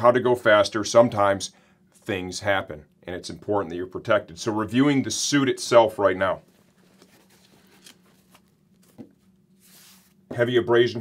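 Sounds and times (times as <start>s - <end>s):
leather rustling: 6.4s - 10.2s.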